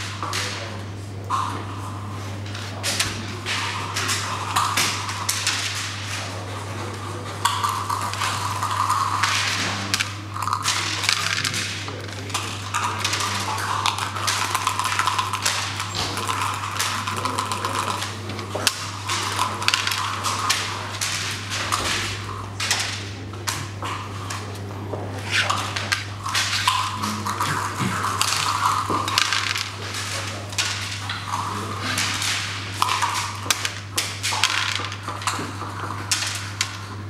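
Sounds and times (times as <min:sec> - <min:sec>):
low electrical hum: 0:00.0 - 0:37.0
checkers clacking on wooden board: 0:07.4 - 0:24.4, 0:25.2 - 0:37.0
dice thrown onto board: 0:25.3 - 0:36.9.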